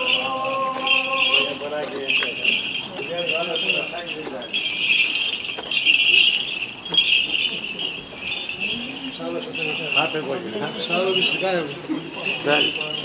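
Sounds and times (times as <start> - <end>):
people's voices: 0.0 - 13.0
small metal bells jingling: 0.0 - 13.0.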